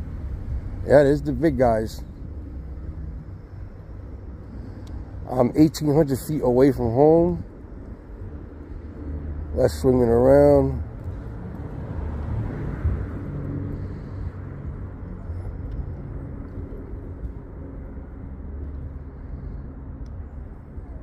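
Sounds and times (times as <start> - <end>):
faint low engine hum: 0.0 - 21.0
road traffic: 0.0 - 21.0
wind buffeting microphone: 10.8 - 21.0.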